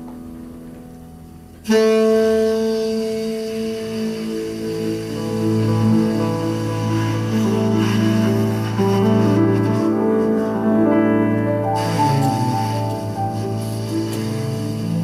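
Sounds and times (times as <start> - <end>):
double bass: 0.0 - 15.0
piano: 0.0 - 15.0
tenor saxophone melody: 1.6 - 15.0.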